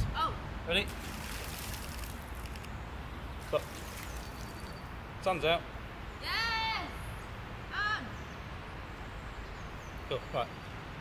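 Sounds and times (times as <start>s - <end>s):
water splashing onto stream: 0.7s - 4.9s
shallow stream washing: 0.9s - 4.9s.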